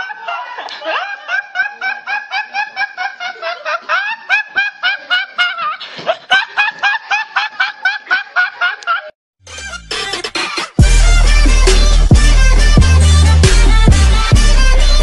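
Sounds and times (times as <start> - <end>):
boy laughing hard: 0.0 - 10.8.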